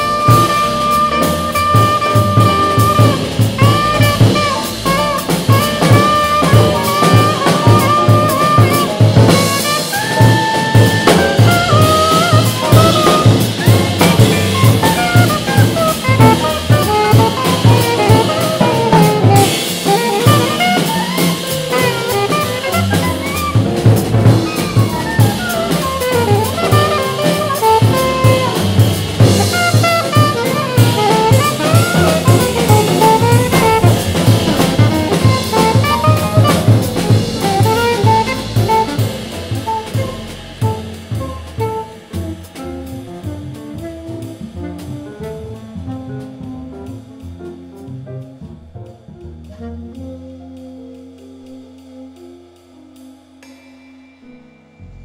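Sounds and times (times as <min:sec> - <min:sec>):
alto saxophone improvising: 0:00.0 - 0:48.4, 0:49.4 - 0:55.0
double bass: 0:00.0 - 0:53.4, 0:54.4 - 0:55.0
drum kit with cymbals: 0:00.0 - 0:55.0
piano: 0:00.0 - 0:55.0.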